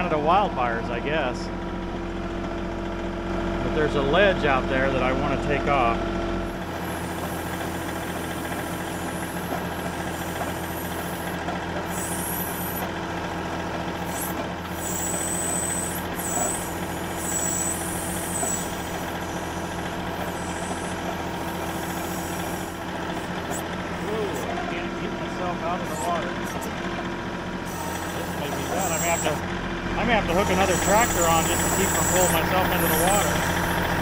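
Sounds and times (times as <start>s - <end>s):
diesel tractor engine running: 0.0s - 34.0s
high-pitched hydraulic whine: 6.4s - 13.0s, 14.0s - 24.9s, 27.6s - 34.0s
backhoe digging mud: 6.6s - 34.0s.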